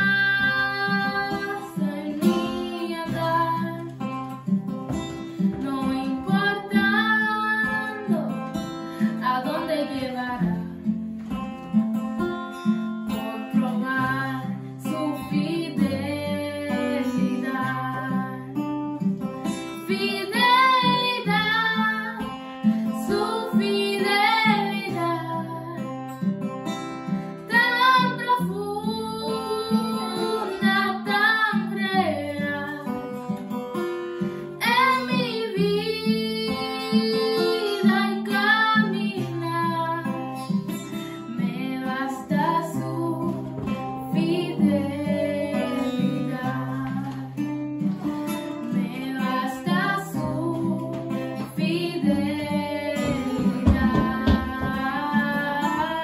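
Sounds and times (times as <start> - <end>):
woman singing: 0.0 - 4.4, 5.4 - 11.0, 13.1 - 18.8, 19.4 - 26.1, 27.4 - 33.4, 34.5 - 56.0
acoustic guitar: 0.0 - 56.0.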